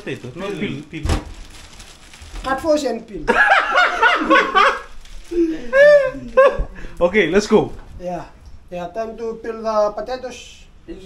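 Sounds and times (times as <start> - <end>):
men laughing: 3.3 - 7.0.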